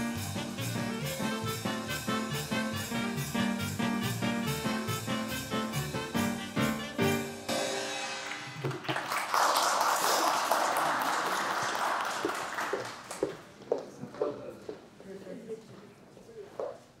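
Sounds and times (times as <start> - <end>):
wind band with drums: 0.0 - 8.0
audience applauding: 8.2 - 13.5.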